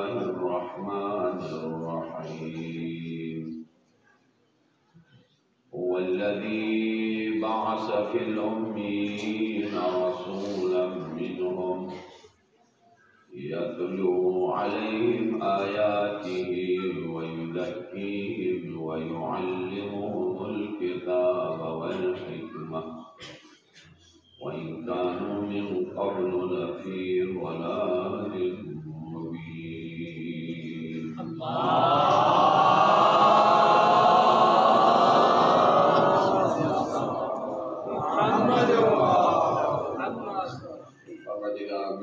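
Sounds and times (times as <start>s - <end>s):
man chanting: 0.0s - 3.7s, 5.7s - 12.2s, 13.2s - 23.2s, 24.4s - 42.0s.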